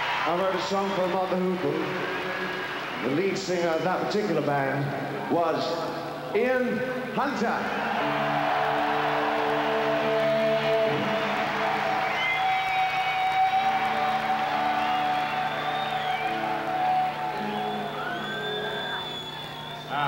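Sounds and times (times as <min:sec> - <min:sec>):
stadium crowd cheering: 0:00.0 - 0:05.5, 0:07.2 - 0:20.0
live rock band: 0:07.9 - 0:19.7.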